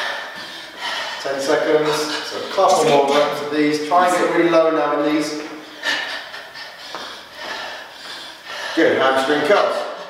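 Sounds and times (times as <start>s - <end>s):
footsteps on hard floor: 6.8s - 8.2s.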